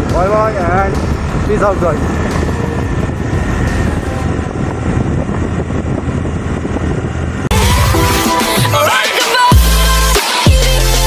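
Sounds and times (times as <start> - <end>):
electronic music with rising sweep: 0.0 - 5.2, 7.4 - 11.0
wind on microphone: 0.0 - 8.3
scooter engine: 0.0 - 9.7.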